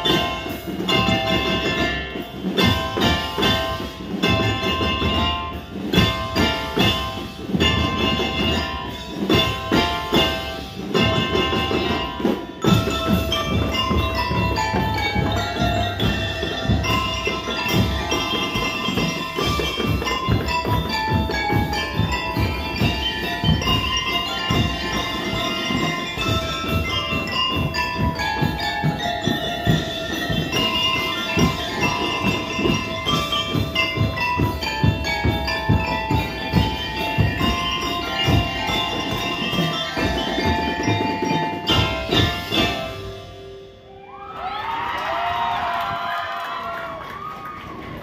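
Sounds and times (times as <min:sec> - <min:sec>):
bell-lyre melody: 0:00.0 - 0:44.0
marching drums: 0:00.0 - 0:48.0.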